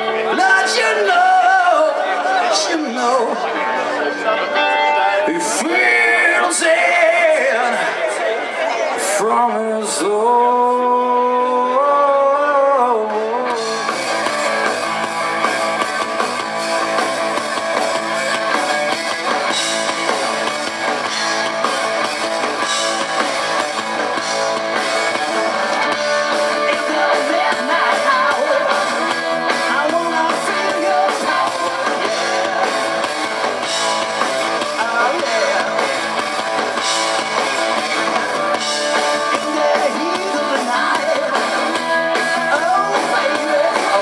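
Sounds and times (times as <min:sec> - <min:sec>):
electric guitar lead with bending notes: 0:00.0 - 0:44.0
man singing live rock: 0:00.0 - 0:44.0.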